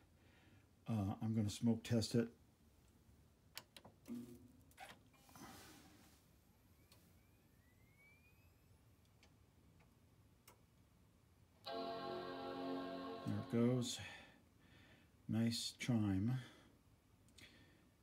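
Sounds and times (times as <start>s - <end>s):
faint rising computer whine: 6.5s - 9.0s, 11.6s - 14.2s.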